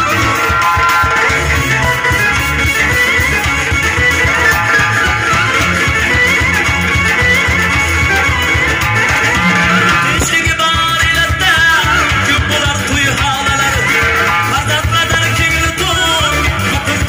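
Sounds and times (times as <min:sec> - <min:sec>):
guitar melody: 0:00.0 - 0:11.2
bass and drums: 0:00.0 - 0:17.0.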